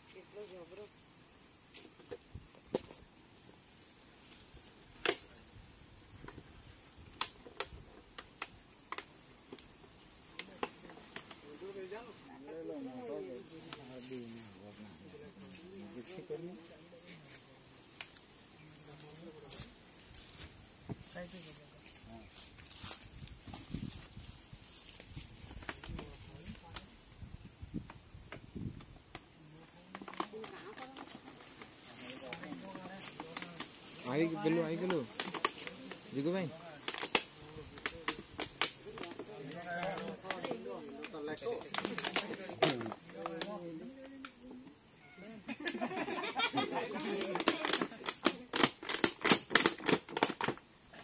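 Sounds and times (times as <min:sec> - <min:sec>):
plastic bottle crackling: 0:29.1 - 0:44.4, 0:47.0 - 0:50.8
plastic sack crinkling: 0:29.8 - 0:43.5.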